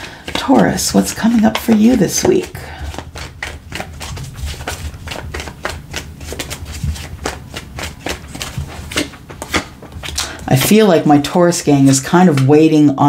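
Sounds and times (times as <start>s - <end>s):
cards being shuffled: 0.0s - 12.6s.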